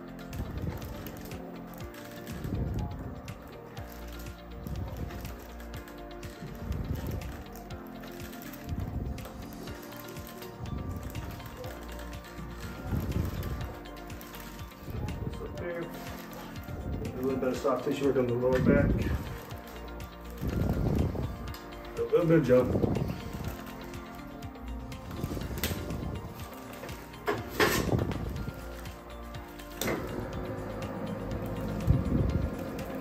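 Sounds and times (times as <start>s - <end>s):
background music: 0.0s - 33.0s.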